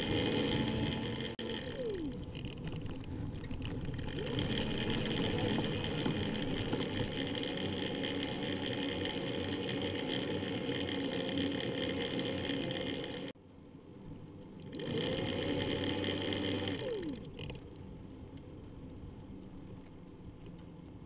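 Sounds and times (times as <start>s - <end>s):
faint steady whine: 0.0s - 21.0s.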